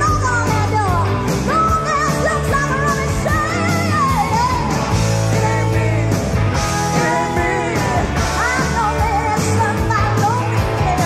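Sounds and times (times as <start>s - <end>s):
electric guitar: 0.0s - 11.0s
live rock band: 0.0s - 11.0s
woman singing: 0.0s - 11.0s.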